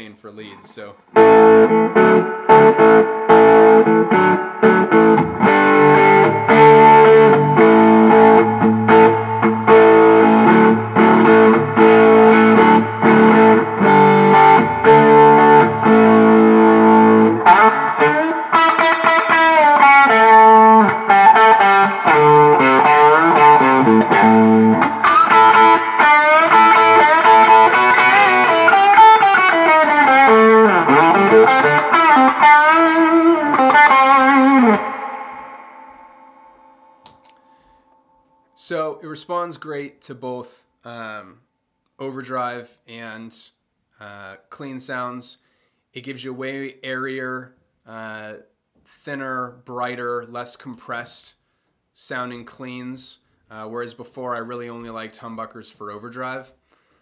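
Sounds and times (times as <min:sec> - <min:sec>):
overdriven electric guitar: 0:01.1 - 0:38.0.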